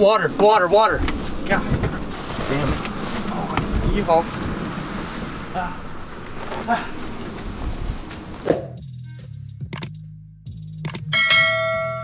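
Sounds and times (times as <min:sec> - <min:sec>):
low musical drone: 0:00.2 - 0:09.1
sharp clicks: 0:09.7 - 0:10.0, 0:10.8 - 0:11.1
bright bell ding: 0:11.1 - 0:12.0.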